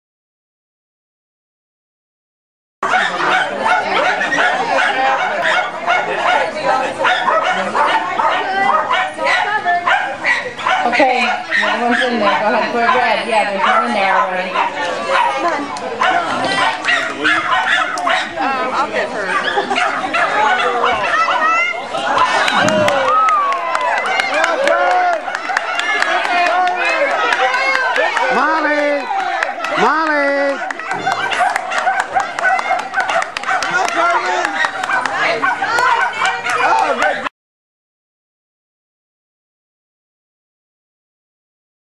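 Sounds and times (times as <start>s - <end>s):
dogs barking in high yaps: 2.8s - 37.3s
people talking: 2.8s - 37.3s.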